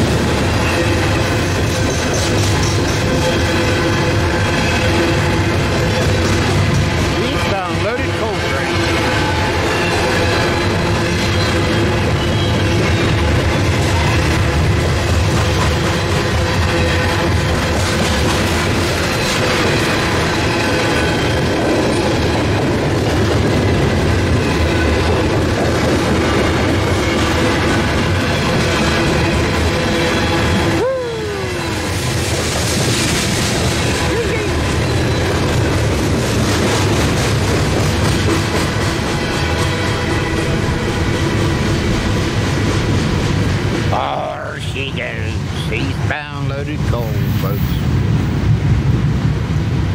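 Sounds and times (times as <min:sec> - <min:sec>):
train wheels rumbling on rails: 0:00.0 - 0:49.9.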